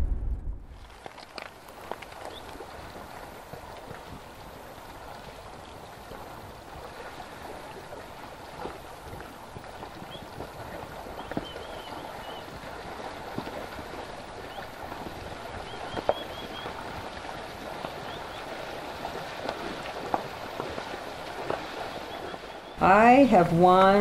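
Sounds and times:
animals splashing through water: 0:00.7 - 0:24.0
rushing water: 0:00.7 - 0:24.0.

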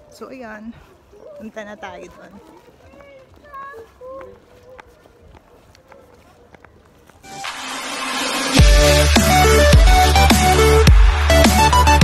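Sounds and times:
footsteps on pavement: 0:00.0 - 0:08.0.

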